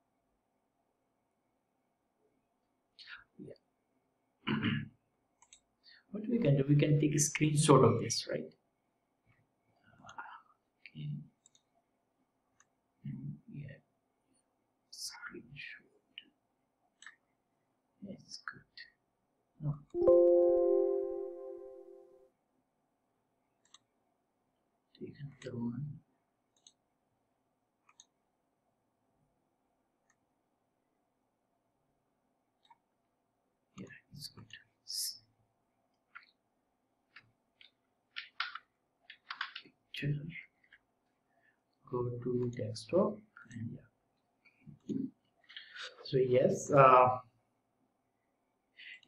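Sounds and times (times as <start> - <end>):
computer mouse clicks: 5.4 - 5.7, 11.4 - 11.7, 23.6 - 23.9, 26.5 - 26.8, 27.8 - 28.2, 37.1 - 39.7
faint computer mouse click: 26.6 - 26.8.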